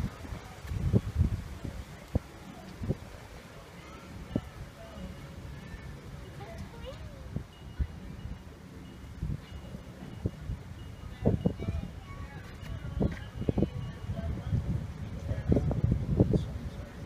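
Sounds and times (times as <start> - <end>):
wind rumbling on microphone: 0.0 - 5.0, 5.7 - 17.0
faint distant voices: 0.0 - 17.0.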